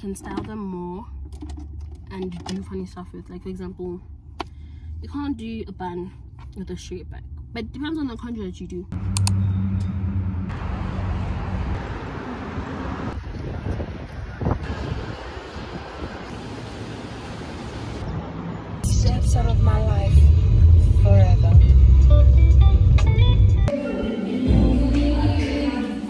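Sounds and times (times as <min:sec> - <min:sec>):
traffic hiss and hum: 0:00.0 - 0:22.3
low rumble: 0:18.8 - 0:23.7.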